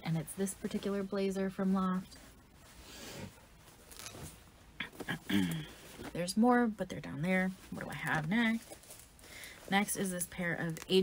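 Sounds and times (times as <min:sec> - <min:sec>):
fabric rustling: 0:00.1 - 0:11.0.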